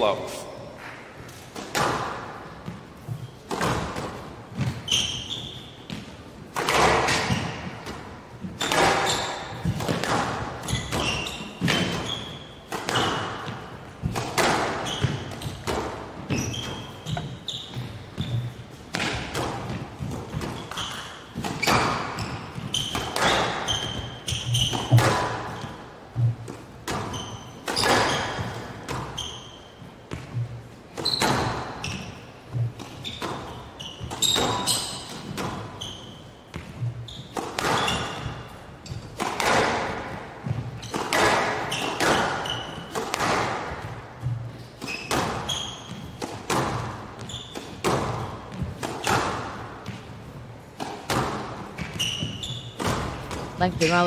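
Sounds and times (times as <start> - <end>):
shoes squeaking on court floor: 0.5 - 54.0
squash ball hits ringing: 6.6 - 50.0.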